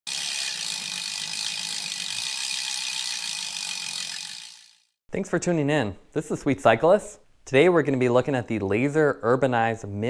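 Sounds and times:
bicycle freehub ratcheting: 0.1 - 5.0.

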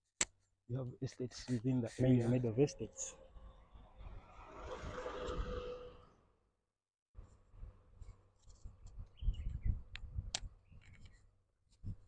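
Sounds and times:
pickup truck passing: 3.3 - 6.4.

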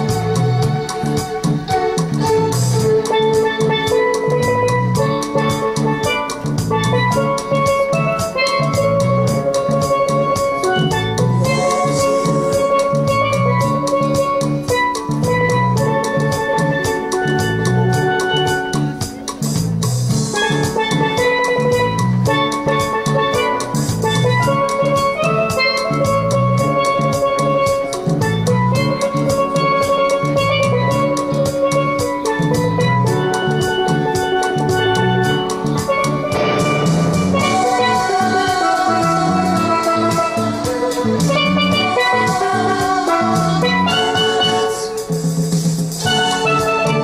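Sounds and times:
backing track with bass and drums: 0.0 - 47.0
steel pan melody: 0.0 - 47.0.

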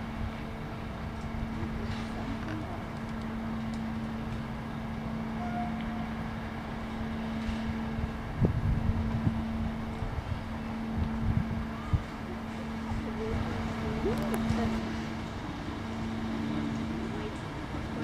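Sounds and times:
wind buffeting microphone: 7.4 - 15.1.

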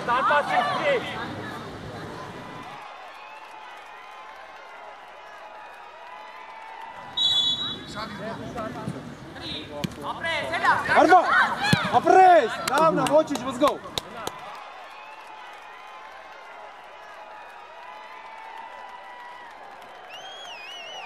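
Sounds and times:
people shouting excitedly: 0.0 - 1.3, 10.4 - 13.0
referee's whistle: 7.1 - 8.0
football being kicked: 11.6 - 12.1.

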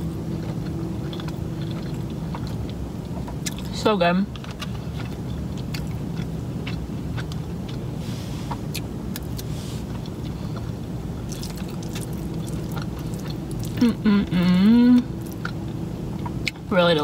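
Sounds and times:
steady low rumble: 0.0 - 17.0
chewing: 0.3 - 16.7.

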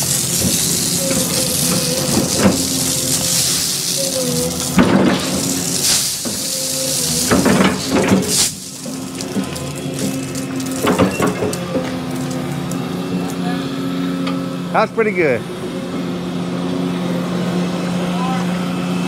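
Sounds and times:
gravel rattling into concrete form: 0.0 - 12.7
diesel excavator engine running: 0.0 - 19.0.

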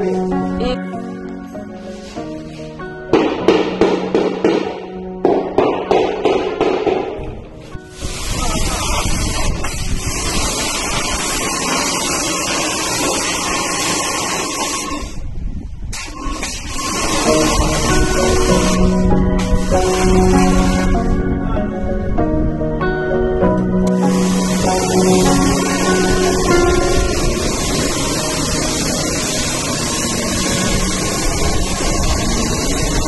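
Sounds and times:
background music: 0.0 - 12.8, 16.8 - 33.0
pressure washer spraying water: 1.6 - 4.9, 7.7 - 15.2, 15.9 - 21.2, 23.9 - 33.0.

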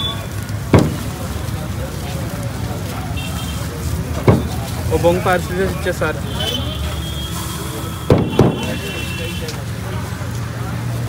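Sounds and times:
low street traffic hum: 0.0 - 11.0
sharp knocks: 0.7 - 1.1, 4.2 - 4.6, 8.1 - 8.8.

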